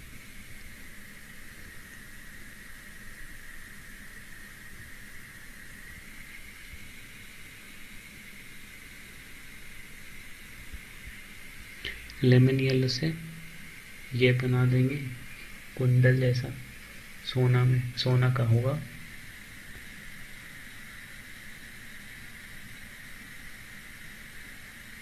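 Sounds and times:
faint microphone hiss: 0.0 - 25.0.

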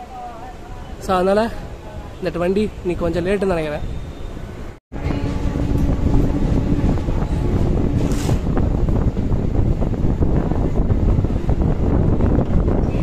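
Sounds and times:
train rumbling and rattling: 4.6 - 13.0
wind buffeting microphone: 4.6 - 13.0.

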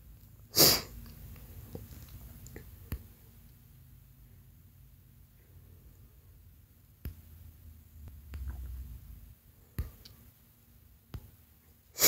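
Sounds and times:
person sneezing: 0.5 - 1.0.

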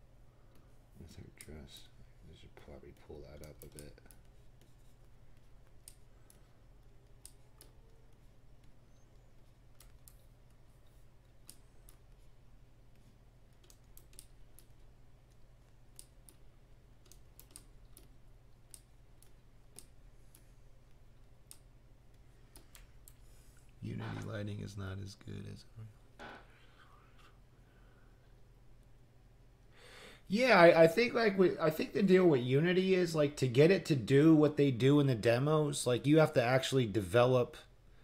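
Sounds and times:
low electrical hum: 0.0 - 38.0.

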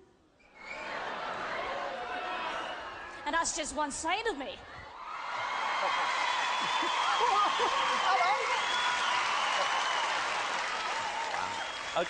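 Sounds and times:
audience applauding: 5.1 - 12.0.

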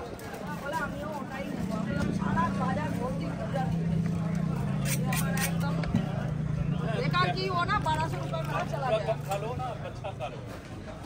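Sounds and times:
voices talking: 0.0 - 11.0
low motor hum: 0.7 - 10.4.

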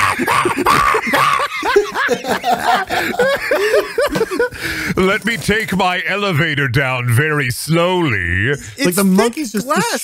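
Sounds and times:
people laughing: 0.0 - 5.1.

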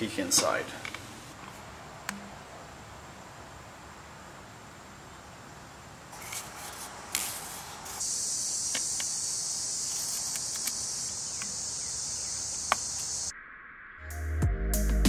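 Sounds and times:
insects chirring: 0.1 - 13.3
plastic cap clicks: 10.2 - 10.8.

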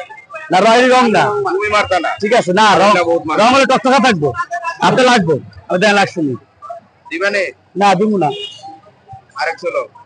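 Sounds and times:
men speaking: 0.0 - 10.0.

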